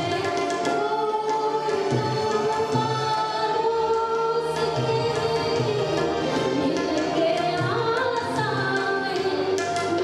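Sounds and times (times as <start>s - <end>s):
tabla: 0.0s - 10.0s
woman singing into microphone: 0.0s - 10.0s.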